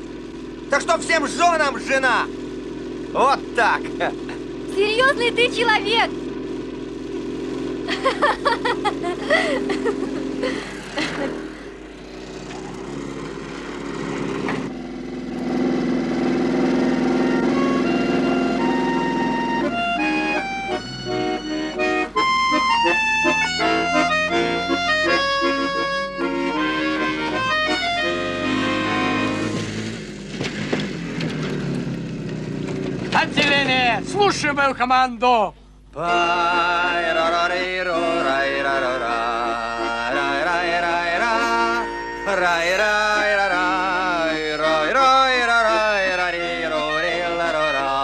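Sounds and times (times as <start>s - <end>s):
motorcycle engine running: 0.0s - 48.0s
person laughing: 7.8s - 11.8s, 41.2s - 41.9s.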